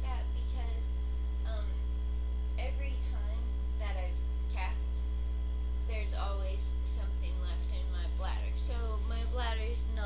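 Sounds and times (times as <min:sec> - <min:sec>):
woman's voice: 0:00.0 - 0:01.9, 0:02.6 - 0:05.1, 0:05.9 - 0:10.0
low electrical mains hum: 0:00.0 - 0:10.0.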